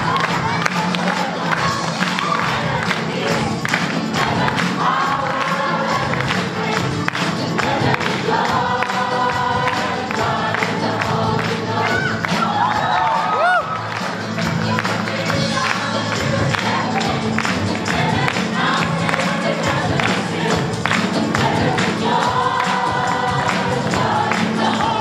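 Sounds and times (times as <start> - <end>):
congregation and choir singing: 1.0 - 13.2, 14.0 - 25.0.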